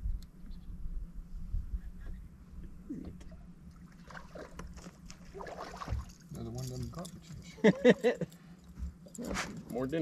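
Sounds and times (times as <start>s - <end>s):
steady low hum: 0.0s - 10.0s
light water splashing: 3.6s - 7.2s.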